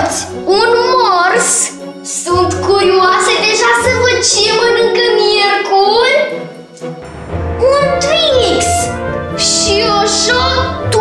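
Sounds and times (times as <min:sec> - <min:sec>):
background music track: 0:00.0 - 0:11.0.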